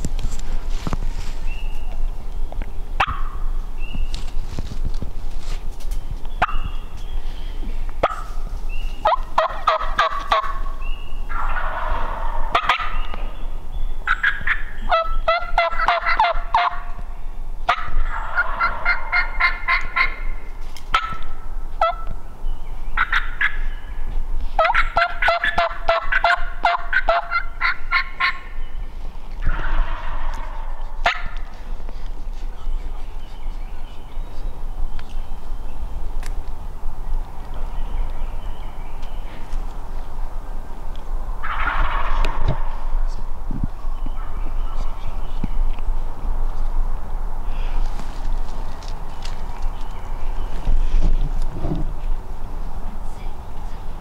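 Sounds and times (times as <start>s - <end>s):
turkey gobbling: 3.0s - 3.4s, 8.0s - 8.4s, 9.0s - 10.7s, 11.3s - 13.2s, 14.1s - 16.9s, 17.7s - 20.3s, 20.9s - 22.1s, 23.0s - 23.6s, 24.6s - 28.5s, 29.4s - 31.4s, 41.4s - 42.8s.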